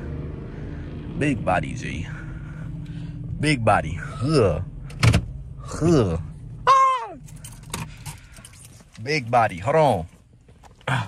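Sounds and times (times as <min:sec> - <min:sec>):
car interior engine hum: 0:00.0 - 0:11.0
keys clicking and jingling: 0:07.2 - 0:09.1.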